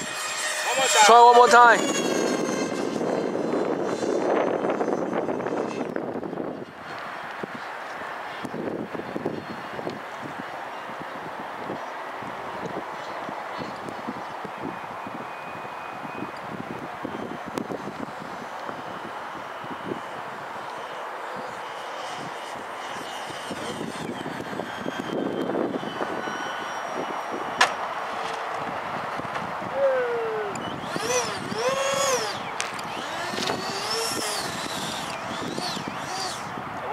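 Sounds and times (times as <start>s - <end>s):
model jet fans whining: 0.0s - 36.9s.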